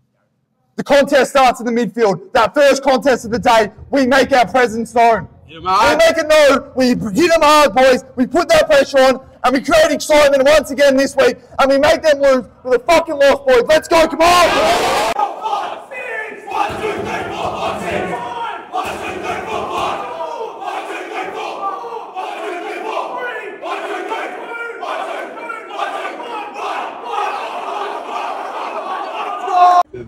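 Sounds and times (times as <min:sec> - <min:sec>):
group of men chanting: 0:14.3 - 0:29.9.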